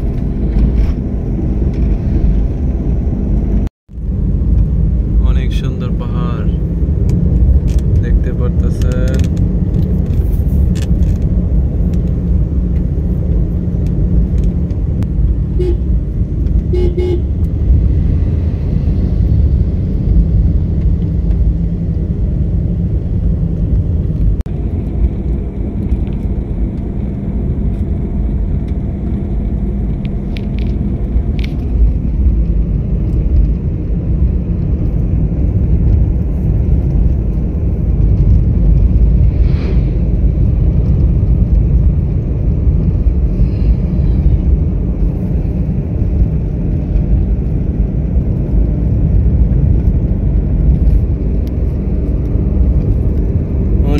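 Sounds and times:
vehicle engine and road rumble: 0.0s - 53.9s
short horn toots: 15.5s - 15.9s, 16.6s - 17.3s.

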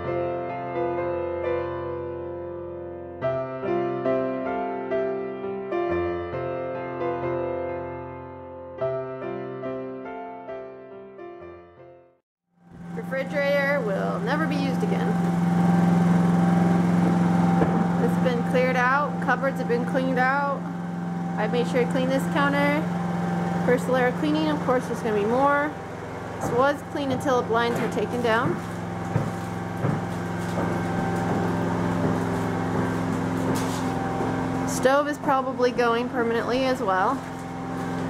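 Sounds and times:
generator engine humming: 12.6s - 38.0s.

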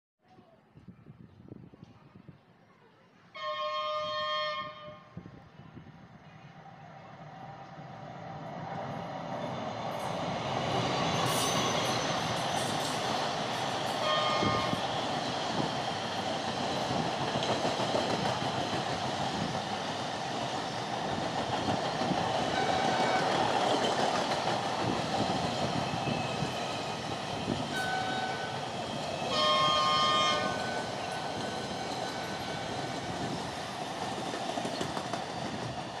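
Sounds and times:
train horn: 3.4s - 5.2s, 14.0s - 14.8s, 22.5s - 23.5s, 27.7s - 28.6s, 29.3s - 31.1s
train wheels rumbling and rattling: 7.6s - 36.0s.

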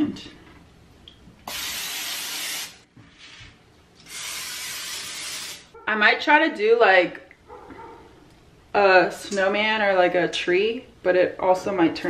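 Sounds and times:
aerosol spray hissing: 4.1s - 5.7s.

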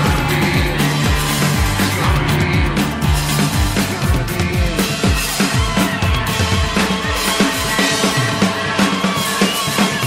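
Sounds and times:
recorded music with drum beat: 0.0s - 10.0s.

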